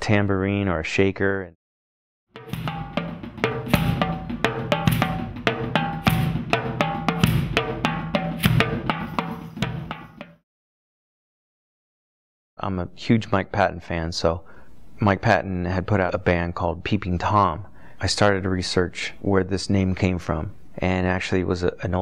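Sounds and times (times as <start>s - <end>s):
drums struck with mallets: 2.4s - 10.4s.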